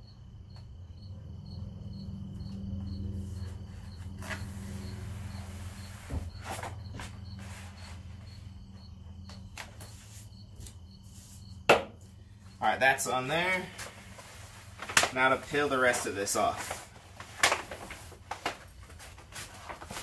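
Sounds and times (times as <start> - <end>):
vinyl film peeling and crackling: 13.8 - 20.0.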